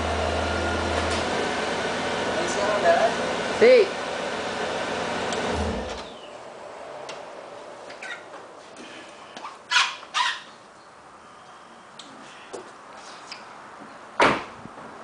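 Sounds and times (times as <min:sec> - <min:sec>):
car engine running: 0:00.0 - 0:07.0.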